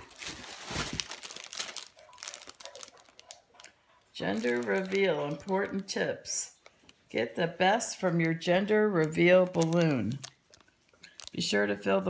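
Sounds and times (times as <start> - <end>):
gift packaging crinkling: 0.0 - 6.0, 7.7 - 12.0.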